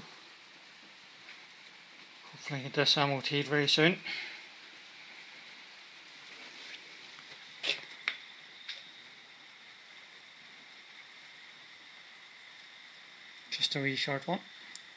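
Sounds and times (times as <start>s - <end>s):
faint background hiss: 0.0s - 14.9s.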